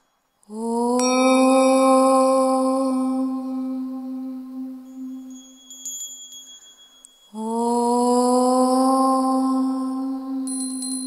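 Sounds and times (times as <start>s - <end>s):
long held meditation tone: 0.0s - 11.0s
soft high chime notes: 4.5s - 7.5s, 10.5s - 11.0s.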